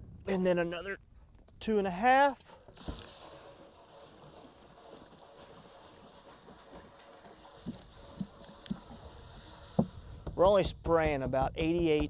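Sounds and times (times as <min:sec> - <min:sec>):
liquid glugging: 0:02.8 - 0:10.0.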